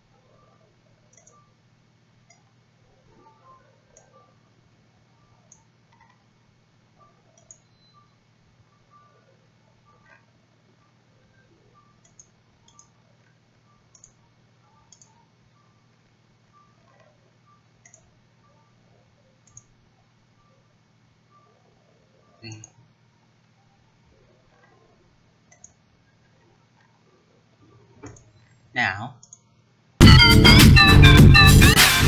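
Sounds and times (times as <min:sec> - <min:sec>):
low electrical hum: 0:00.0 - 0:30.0
computer mouse clicks: 0:01.0 - 0:01.5, 0:02.2 - 0:02.6, 0:03.4 - 0:04.2, 0:05.2 - 0:06.2, 0:07.0 - 0:08.1, 0:09.9 - 0:10.3, 0:11.3 - 0:15.3, 0:16.0 - 0:18.7, 0:19.4 - 0:19.8, 0:22.2 - 0:22.8, 0:24.5 - 0:27.0, 0:27.7 - 0:28.5, 0:29.2 - 0:29.5.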